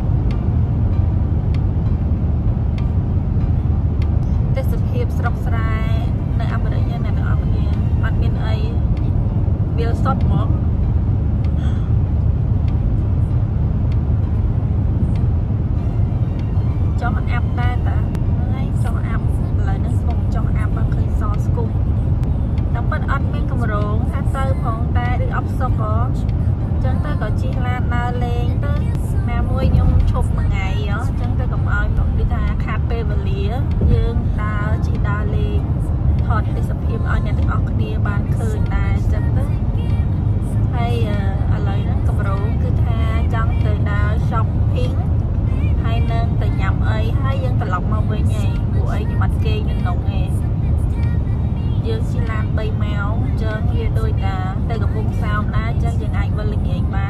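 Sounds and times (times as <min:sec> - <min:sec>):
car road and engine rumble: 0:00.0 - 0:57.0
people talking: 0:04.5 - 0:08.8, 0:09.8 - 0:10.6, 0:17.0 - 0:21.8, 0:22.8 - 0:26.2, 0:26.8 - 0:40.0, 0:40.6 - 0:57.0.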